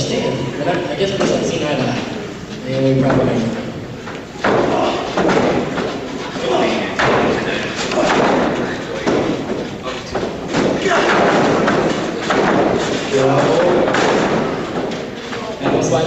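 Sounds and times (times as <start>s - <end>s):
heavy thuds on wrestling ring: 6.8s - 15.1s.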